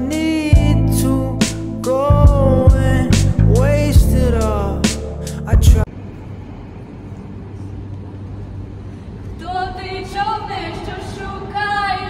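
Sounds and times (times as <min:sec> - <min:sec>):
car park hum and rumble: 0:00.0 - 0:12.0.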